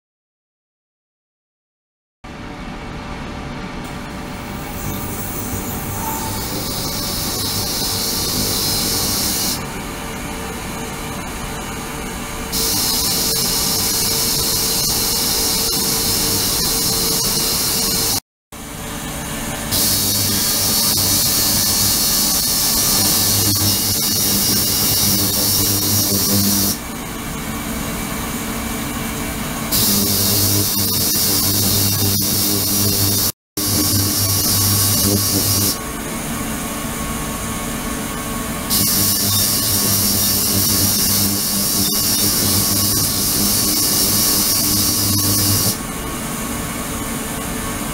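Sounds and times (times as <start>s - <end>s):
ultrasonic cleaner hiss: 6.3s - 9.6s.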